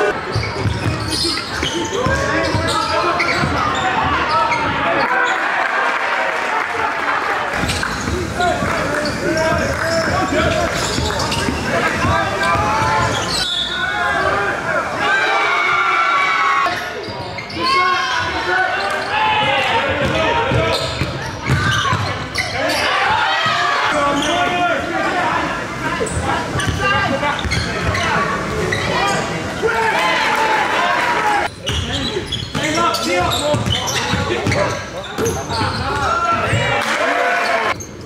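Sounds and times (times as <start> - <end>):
sneakers squeaking: 0.0 - 5.4, 7.5 - 14.4, 16.6 - 25.2, 26.0 - 29.3, 31.4 - 36.8, 37.4 - 38.0
voices of players and onlookers: 0.0 - 38.0
basketball bouncing: 33.5 - 36.6.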